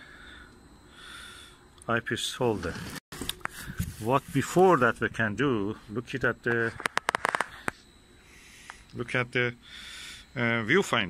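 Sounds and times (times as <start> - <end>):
plastic packaging crackling: 6.8 - 7.6
sharp clicks: 6.8 - 7.8.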